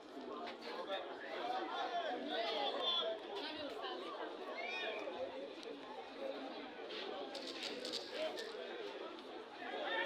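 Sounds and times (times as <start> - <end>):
indistinct chatter of voices: 0.0 - 10.0.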